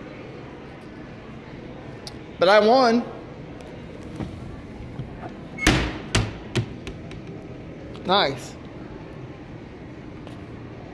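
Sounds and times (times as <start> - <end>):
steady background hum: 0.0 - 10.9
balls knocking and thumping: 4.1 - 7.4.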